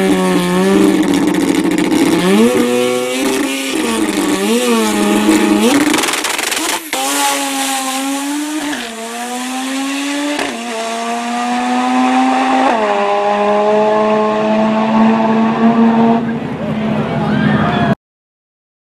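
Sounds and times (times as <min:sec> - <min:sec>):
racing engine upshifting: 0:00.0 - 0:17.6.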